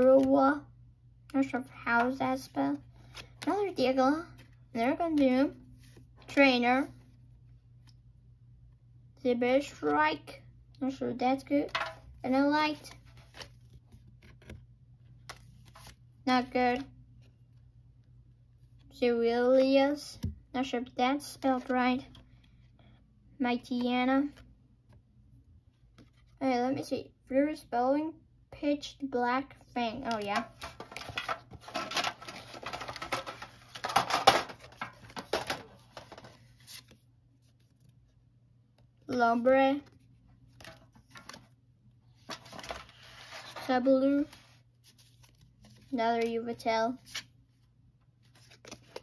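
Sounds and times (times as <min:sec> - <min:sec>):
trading cards clicking and rustling: 0:30.0 - 0:37.0.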